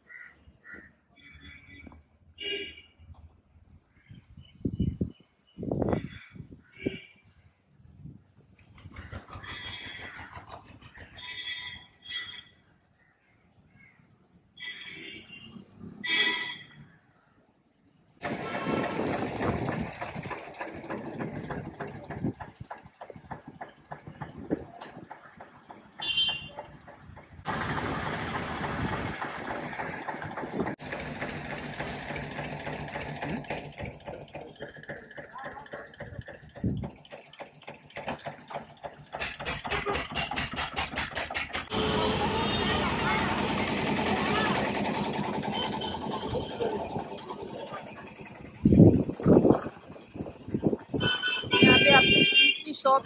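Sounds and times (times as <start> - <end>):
vehicle engines running: 18.2 - 53.0.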